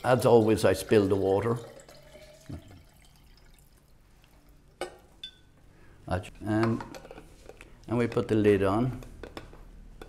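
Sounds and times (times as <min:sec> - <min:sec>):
water dripping and trickling: 0:00.0 - 0:04.6.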